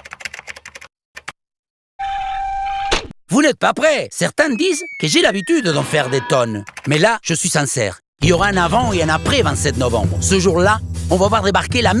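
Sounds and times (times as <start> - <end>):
keyboard typing: 0.0 - 1.4, 6.6 - 7.0.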